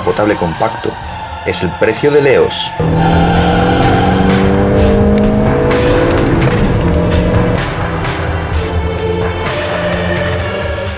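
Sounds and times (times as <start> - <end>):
background music: 0.0 - 10.9
car engine accelerating: 2.8 - 8.7.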